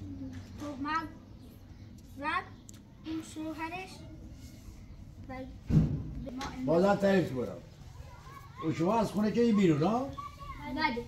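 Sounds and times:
child talking: 0.0 - 1.4, 2.1 - 4.3, 5.2 - 5.6, 8.0 - 8.8, 9.7 - 11.0.

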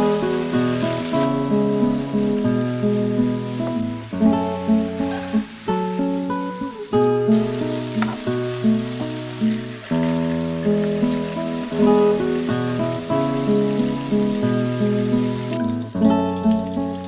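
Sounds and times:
acoustic guitar chords: 0.0 - 17.0
beef sizzling in a pan: 0.0 - 17.0.

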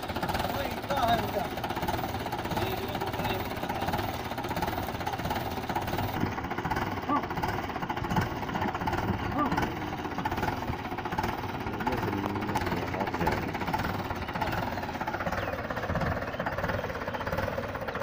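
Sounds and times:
tractor diesel engine idling: 0.0 - 18.0
people talking: 0.4 - 1.6, 2.4 - 4.1, 7.0 - 7.5, 8.9 - 10.4, 11.6 - 15.0.

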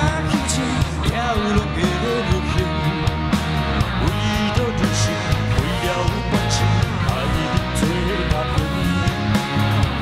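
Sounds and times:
man singing into a microphone: 0.0 - 3.0, 4.0 - 9.6
live rock band playing: 0.0 - 10.0.

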